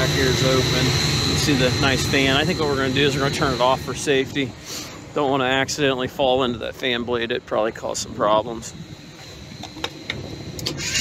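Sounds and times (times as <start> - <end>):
air unit low rumble: 0.0 - 11.0
faint high whine: 0.0 - 11.0.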